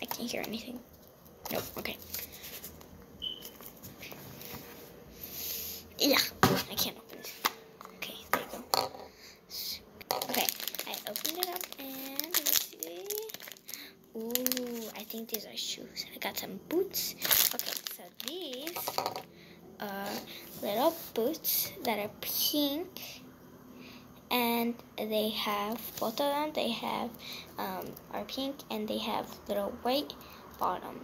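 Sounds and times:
plastic wrapper crinkling: 0:10.1 - 0:15.6, 0:17.0 - 0:19.2.

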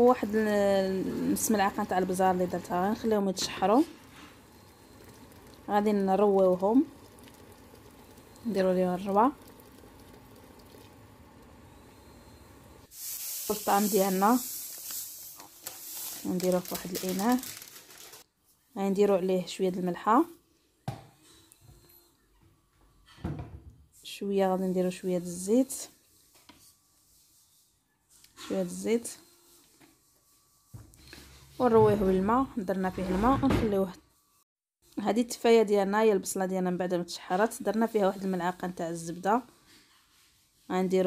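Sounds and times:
grains rubbed by hand in bowl: 0:00.0 - 0:10.8
steaming pot hissing: 0:00.0 - 0:17.5.

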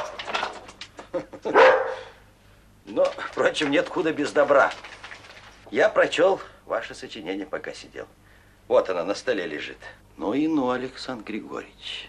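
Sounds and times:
large dog barking: 0:01.5 - 0:02.2.

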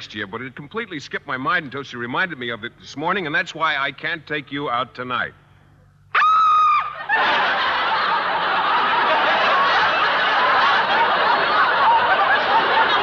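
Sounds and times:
studio audience laughing: 0:07.0 - 0:13.0.

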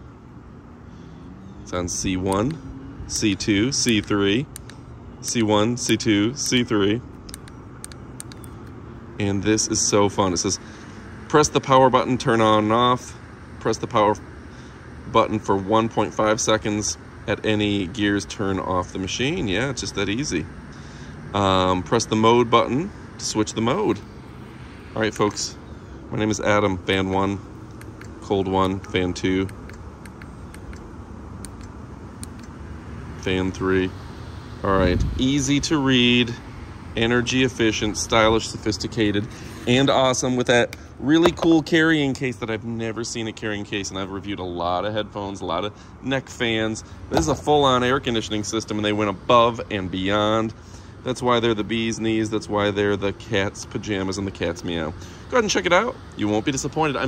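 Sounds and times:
low background hum: 0:00.0 - 0:57.0
steady low background noise: 0:00.0 - 0:57.0.

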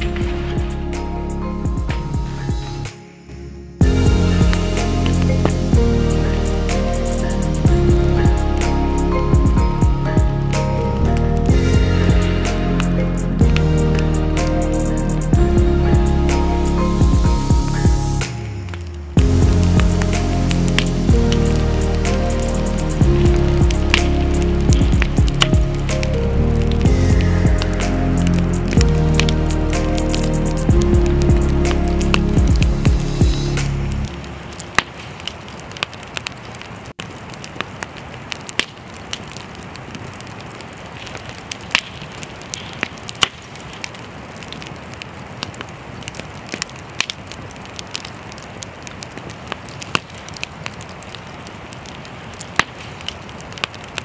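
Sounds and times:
campfire crackling and popping: 0:00.0 - 0:03.1, 0:03.8 - 0:54.0
background music sustained notes: 0:00.0 - 0:34.9.

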